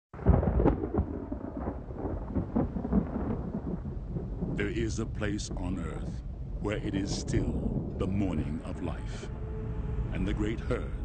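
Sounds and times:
deep rumble with crackles: 0:00.2 - 0:09.3.

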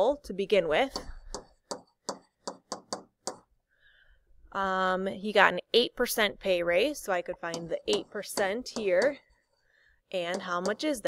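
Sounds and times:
stylus tapping on tablet screen: 0:00.9 - 0:03.5, 0:07.4 - 0:09.2, 0:10.2 - 0:11.0.

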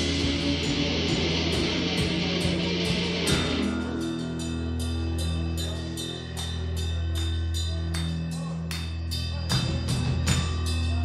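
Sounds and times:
live rock band playing: 0:00.0 - 0:05.6
held low bass notes: 0:00.0 - 0:11.0
steady cymbal strikes: 0:00.0 - 0:11.0.

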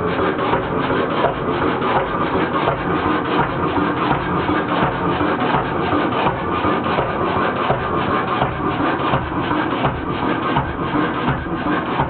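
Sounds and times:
diesel engine clattering: 0:00.0 - 0:12.0.

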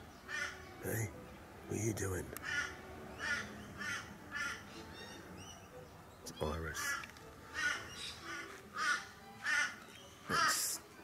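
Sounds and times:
crow cawing: 0:00.3 - 0:00.6, 0:02.4 - 0:04.6, 0:06.8 - 0:10.8.

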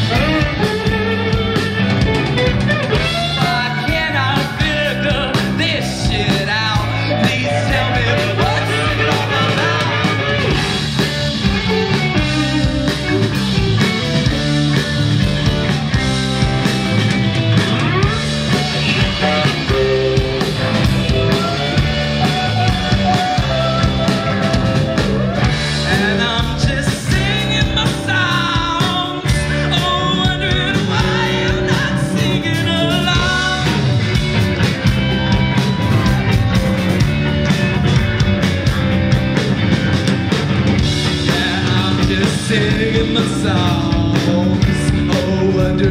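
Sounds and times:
drum kit: 0:00.0 - 0:45.9
electric bass: 0:00.0 - 0:45.9
electric guitars: 0:00.0 - 0:45.9
person singing: 0:03.0 - 0:10.8, 0:18.0 - 0:34.0, 0:41.2 - 0:45.9.

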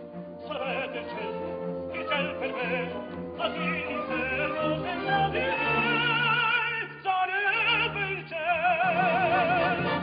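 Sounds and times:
man singing opera: 0:00.4 - 0:10.0.

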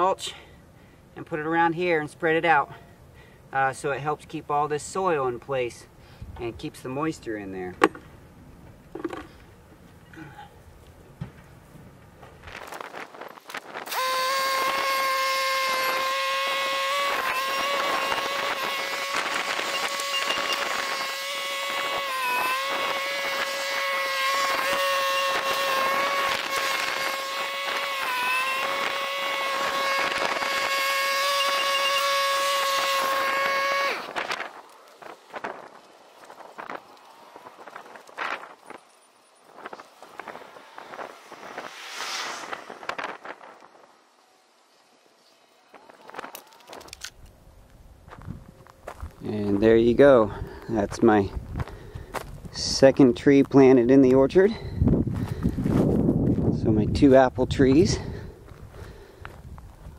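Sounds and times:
rustles: 0:07.8 - 0:14.9, 0:15.5 - 0:49.8
tractor engine whining: 0:07.8 - 0:48.9.

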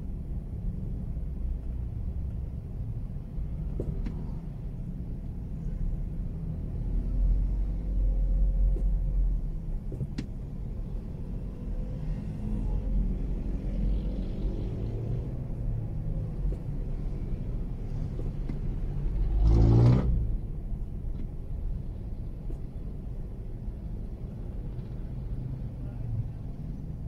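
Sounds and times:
car cabin rumble in traffic: 0:00.0 - 0:27.0
vehicle engine revving: 0:19.1 - 0:20.4.

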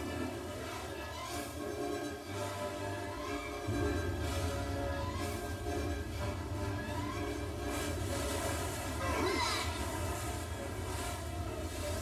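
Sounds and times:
huge wave of water surging: 0:00.0 - 0:12.0
held droning tone: 0:02.3 - 0:12.0.

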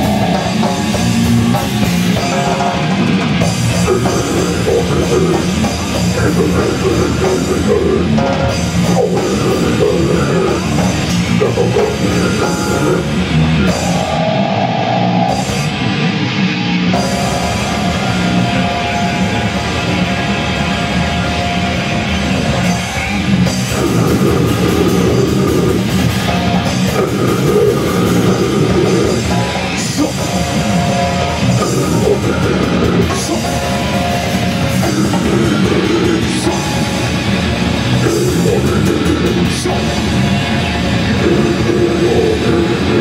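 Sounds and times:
distorted electric guitars: 0:00.0 - 0:43.0
drum kit: 0:00.0 - 0:43.0.

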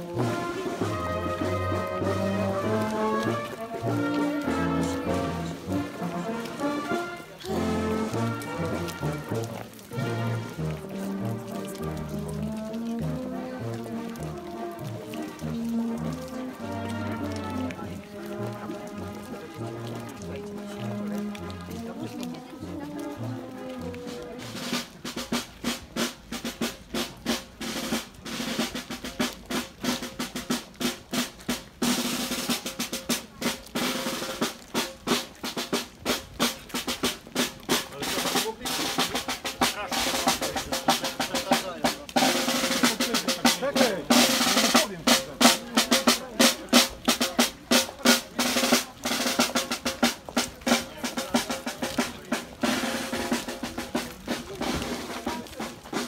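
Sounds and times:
drum strokes in march rhythm: 0:00.0 - 0:56.0
held brass notes: 0:00.0 - 0:56.0.

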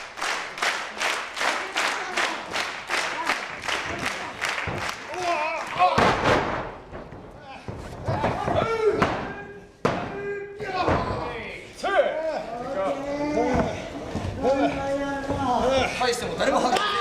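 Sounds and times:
bodies slamming onto wrestling ring: 0:05.8 - 0:07.2.

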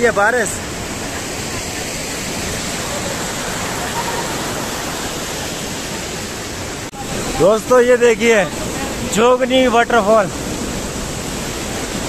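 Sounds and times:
stream rushing over boulders: 0:00.0 - 0:12.0.

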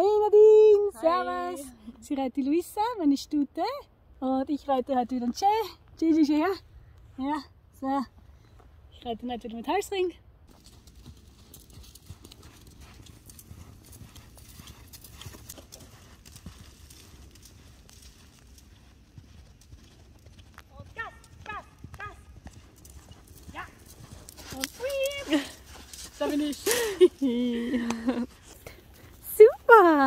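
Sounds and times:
horse hoofbeats on sand: 0:10.5 - 0:30.0.

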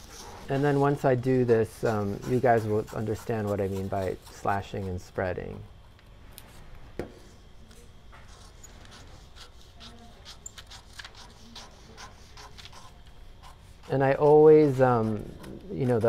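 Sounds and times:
scissors snipping paper: 0:08.7 - 0:13.6.

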